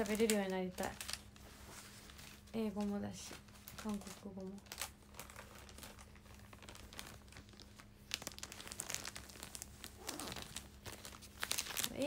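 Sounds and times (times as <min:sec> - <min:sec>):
rustling and crinkling handling: 0:00.0 - 0:12.0.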